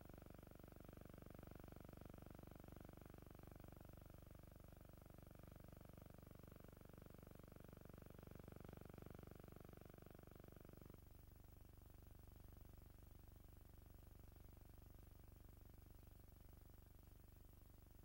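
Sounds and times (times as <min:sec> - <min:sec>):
faint fluttering hum: 0:00.0 - 0:18.0.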